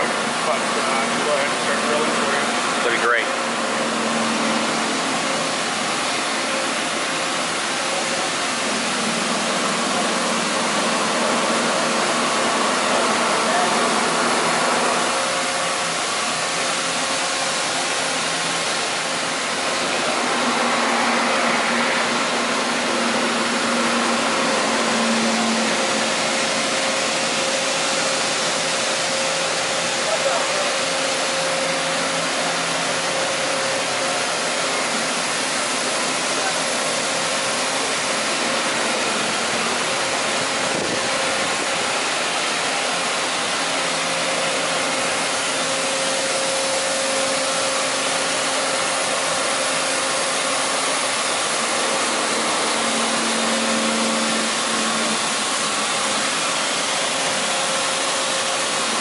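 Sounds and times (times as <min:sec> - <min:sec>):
mid-pitched machine whine: 0:00.0 - 0:59.0
milling machine hiss and whir: 0:00.0 - 0:59.0.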